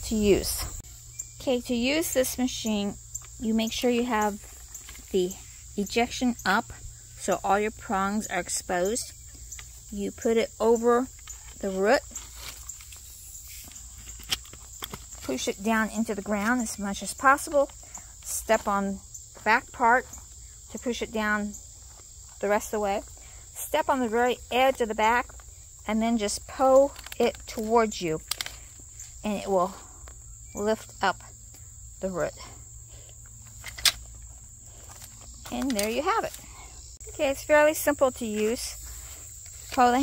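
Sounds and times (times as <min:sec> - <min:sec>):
crickets chirring: 0:00.0 - 0:40.0.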